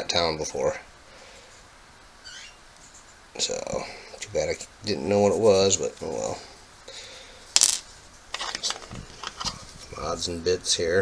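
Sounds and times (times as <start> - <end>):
coins clinking on a table: 7.6 - 8.7.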